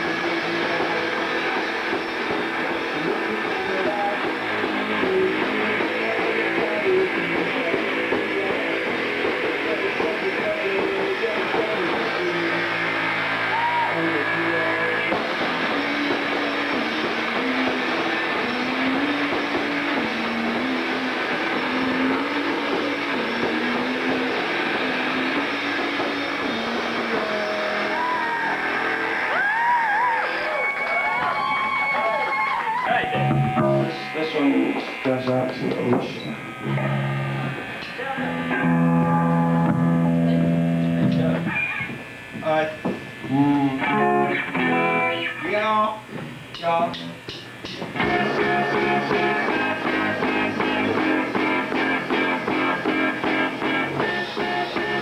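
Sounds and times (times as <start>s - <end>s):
live rock band playing: 0.0s - 30.3s, 31.4s - 42.0s, 43.7s - 45.4s, 47.4s - 55.0s.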